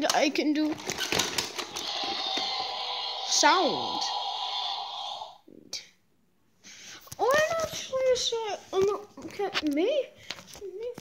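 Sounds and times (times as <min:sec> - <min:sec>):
faint steady hum: 0:01.6 - 0:05.4.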